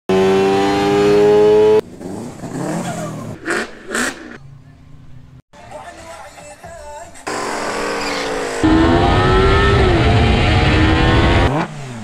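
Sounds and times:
car engine revving: 0.1s - 4.4s, 7.3s - 12.0s
motorcycle engine at high revs: 0.1s - 4.4s, 7.3s - 12.0s.

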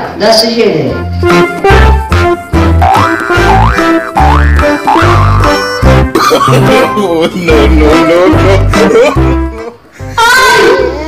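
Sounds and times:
comic background music: 0.8s - 11.0s.

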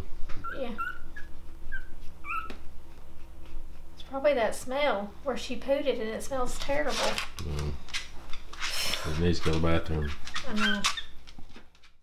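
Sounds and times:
dog whimpering squeaks: 0.3s - 2.6s, 10.0s - 11.2s.

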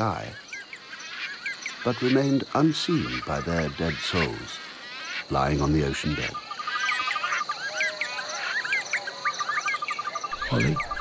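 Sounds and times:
birds chirping: 0.0s - 11.0s
high insect drone: 0.0s - 11.0s.

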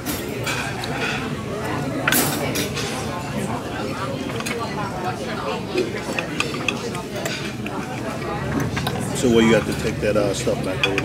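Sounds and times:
cutlery scraping on a plate: 0.0s - 1.4s, 2.0s - 3.2s, 5.7s - 10.0s, 10.6s - 11.0s
restaurant chatter: 0.0s - 11.0s.

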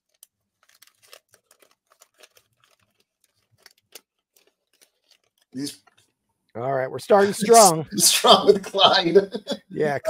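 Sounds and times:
wrapper crinkling: 0.0s - 6.2s.

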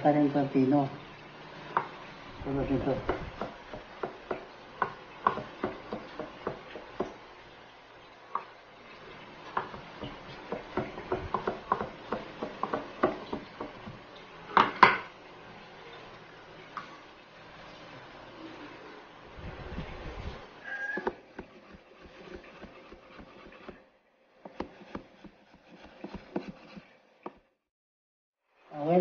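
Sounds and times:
knife chopping on wooden board: 3.0s - 7.2s, 9.5s - 14.0s, 21.0s - 23.8s, 24.4s - 27.4s.

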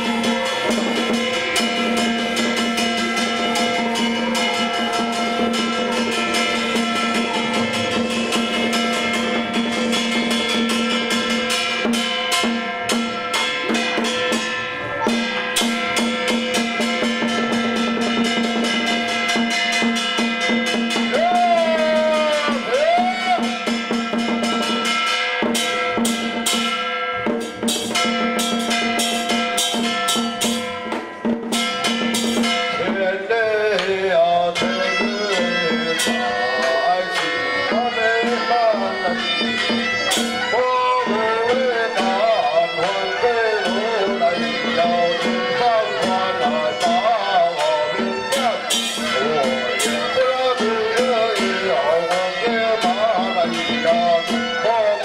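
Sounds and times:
drum beaten rapidly: 0.0s - 55.0s
held notes bending in pitch: 0.0s - 55.0s.

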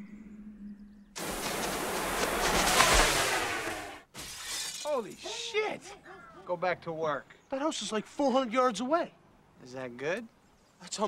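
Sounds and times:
window glass shattering: 2.2s - 5.4s.

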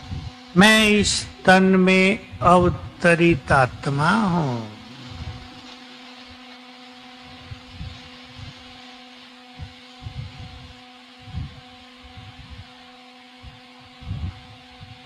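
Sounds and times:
low hum: 0.0s - 6.5s.

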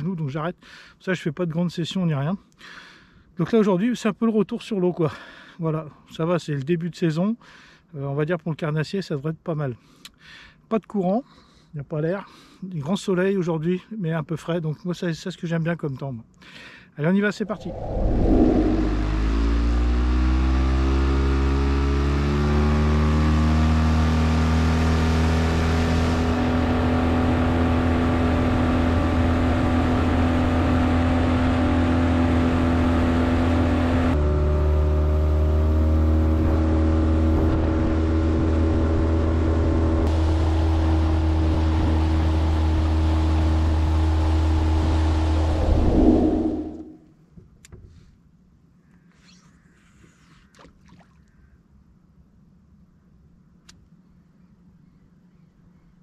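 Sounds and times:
outboard motor running: 26.0s - 45.5s.

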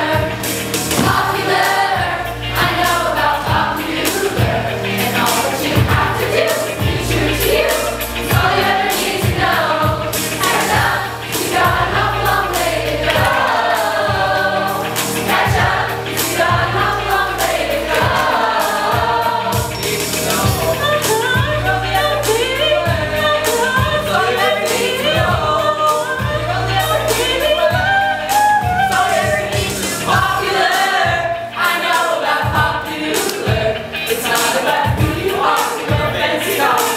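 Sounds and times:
accompaniment with beat and bass: 0.0s - 24.2s
group singing a pop song: 0.0s - 36.9s.

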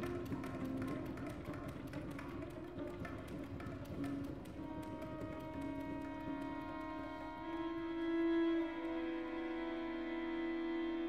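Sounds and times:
dry irregular taps: 0.0s - 7.3s.

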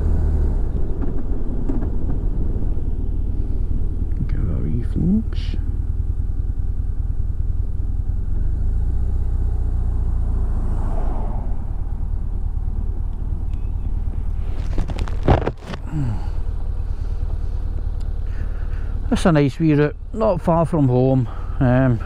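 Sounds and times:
motorcycle engine running: 0.0s - 10.8s, 11.4s - 22.0s
wind and road noise: 0.0s - 22.0s.

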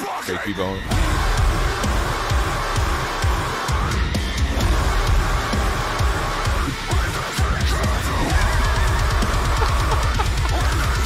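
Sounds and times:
heavy metal song: 0.0s - 11.0s.

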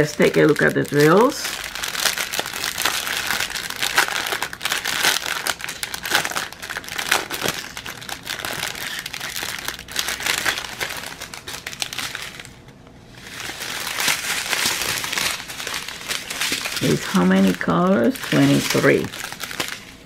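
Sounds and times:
plastic bags crinkling: 0.0s - 20.0s.

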